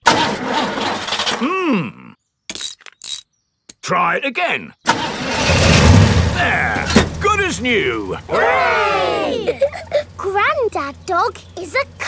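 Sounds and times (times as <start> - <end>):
cartoon car engine sputtering: 0.0 - 1.6, 4.9 - 12.0.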